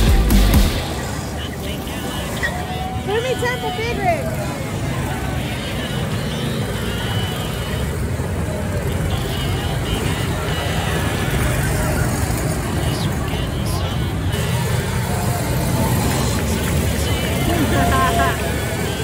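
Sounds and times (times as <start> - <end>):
street rumble: 0.0 - 19.0
voices: 0.0 - 19.0.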